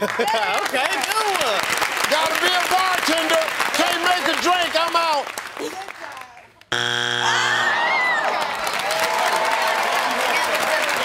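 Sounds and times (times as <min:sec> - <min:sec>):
game-show buzzer: 0:06.7 - 0:08.2.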